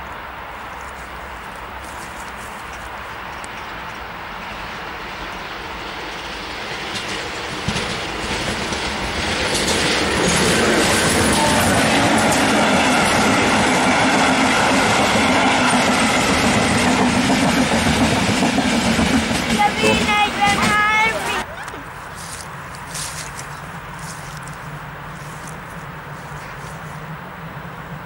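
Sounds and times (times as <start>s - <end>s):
train wheels on rails passing: 0.0s - 28.0s.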